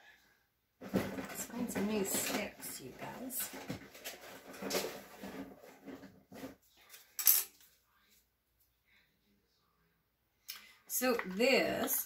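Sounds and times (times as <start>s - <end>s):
rummaging through supplies: 0.8s - 7.4s.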